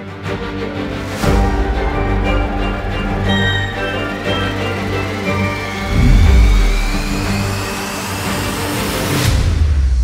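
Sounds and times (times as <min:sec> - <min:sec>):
intro theme music: 0:01.5 - 0:08.4
rising whoosh sweep: 0:05.8 - 0:07.7.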